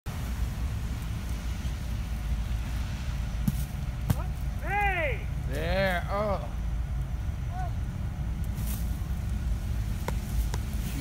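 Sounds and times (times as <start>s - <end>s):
city street traffic rumble: 0.1s - 11.0s.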